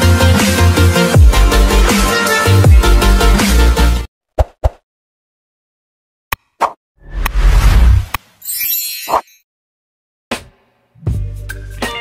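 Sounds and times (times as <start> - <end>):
bass-heavy electronic music: 0.0 - 4.1.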